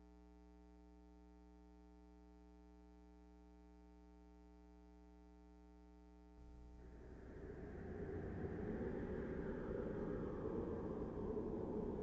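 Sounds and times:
low noisy rumble: 0:06.5 - 0:12.0.

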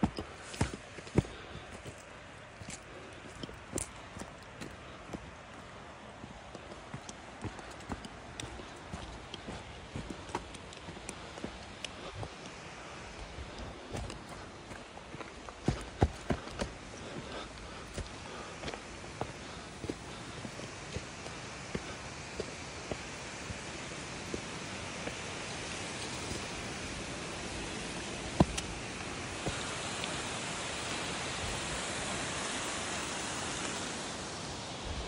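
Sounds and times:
footsteps on rocky path: 0:00.0 - 0:34.0
steady background hiss: 0:00.0 - 0:35.0.

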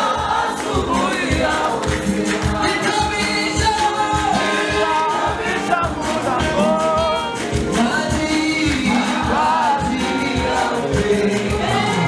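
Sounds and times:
gospel choir singing: 0:00.0 - 0:12.0
lead singer on microphone: 0:00.0 - 0:12.0
steady drumbeat: 0:00.0 - 0:12.0.

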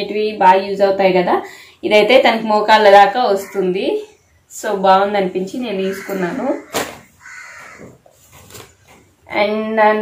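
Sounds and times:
harsh bird call: 0:05.8 - 0:07.9
faint handling noise: 0:07.7 - 0:09.2.

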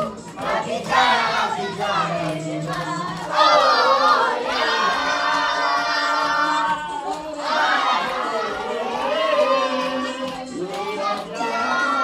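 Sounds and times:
group shouting and cheering: 0:00.0 - 0:12.0.

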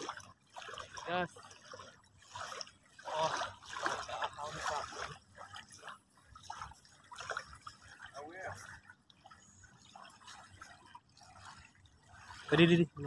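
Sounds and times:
water dripping and trickling: 0:00.0 - 0:13.0.

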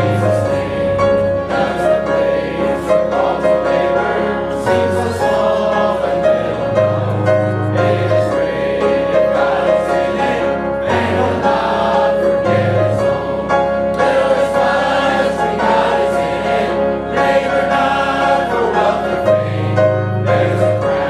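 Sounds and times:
gospel choir singing: 0:00.0 - 0:21.0.

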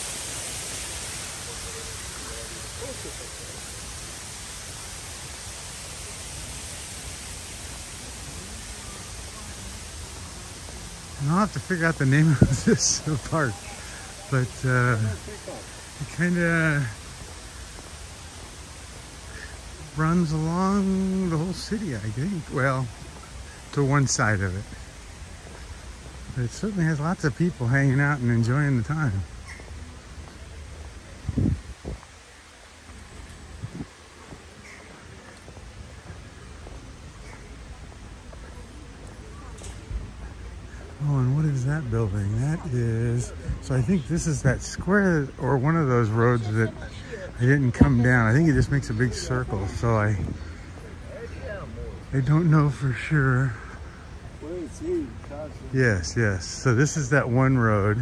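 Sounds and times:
faint distant voices: 0:00.0 - 0:58.0
outdoor hiss and rumble: 0:00.0 - 0:58.0.

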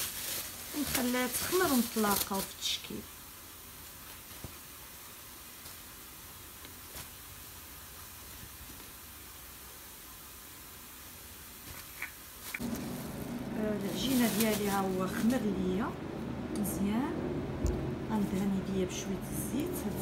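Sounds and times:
faint hiss: 0:00.0 - 0:15.9
low hum: 0:12.6 - 0:20.0.

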